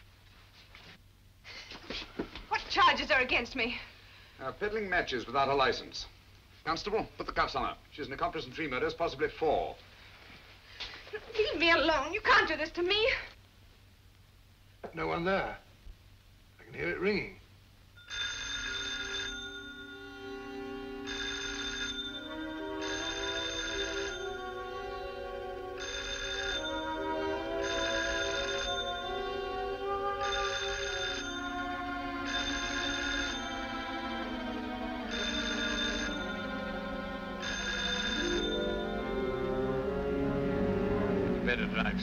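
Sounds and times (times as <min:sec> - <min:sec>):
telephone bell ringing: 0:18.0 - 0:29.6, 0:30.2 - 0:34.3, 0:35.0 - 0:39.6
film score music: 0:19.3 - 0:42.0.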